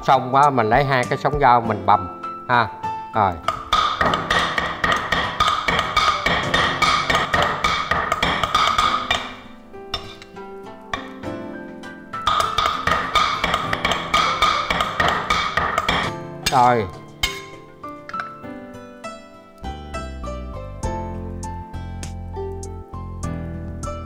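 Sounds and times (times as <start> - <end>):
background music: 0.0 - 24.0
cleavers chopping on wooden block: 3.4 - 9.4, 12.2 - 17.4.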